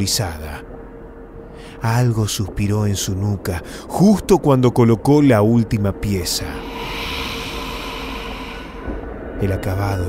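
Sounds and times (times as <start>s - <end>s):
low dark music drone: 0.0s - 10.0s
breathy hissing exhale: 6.4s - 9.4s.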